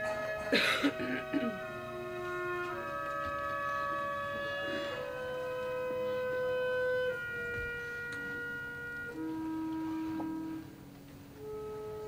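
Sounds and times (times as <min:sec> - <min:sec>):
orchestral music with held notes: 0:00.0 - 0:12.0.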